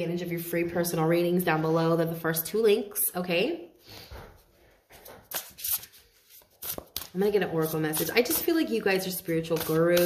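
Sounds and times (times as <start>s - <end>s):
cards rustling: 5.0s - 10.0s.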